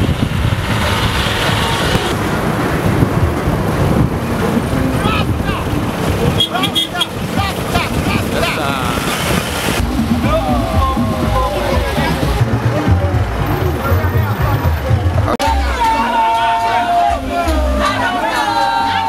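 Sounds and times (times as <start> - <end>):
wind rumble on microphone: 0.0 - 12.4
trucks driving past: 0.0 - 19.0
people calling out: 4.8 - 5.8, 6.4 - 9.1, 9.8 - 12.6, 14.0 - 19.0.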